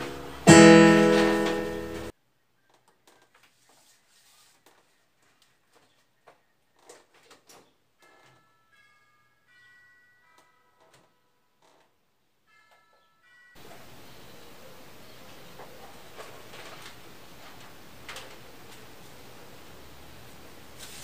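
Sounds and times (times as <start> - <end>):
loud steady hiss: 13.6 - 21.0.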